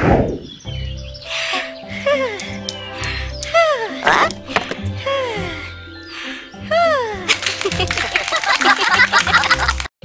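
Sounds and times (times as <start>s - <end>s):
background music: 0.5s - 9.9s.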